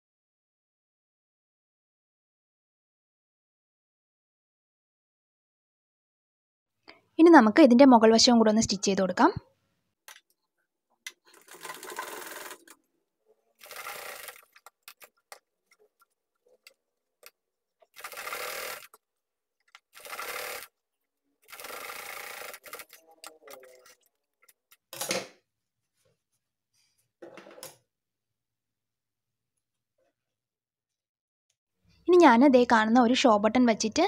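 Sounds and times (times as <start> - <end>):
sewing machine stitching: 11.2 - 12.8, 13.6 - 16.8, 17.8 - 19.0, 19.8 - 20.7, 21.4 - 24.0.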